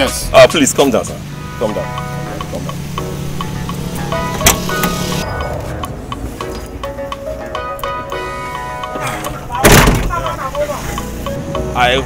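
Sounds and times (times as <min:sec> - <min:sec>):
vehicle door slamming: 0:03.6 - 0:05.2, 0:09.0 - 0:10.4
man's voice: 0:09.2 - 0:12.0.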